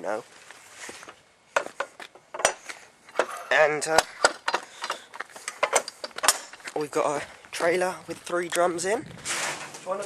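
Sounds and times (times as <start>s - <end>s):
sharp clicks and knocks: 1.6s - 6.8s.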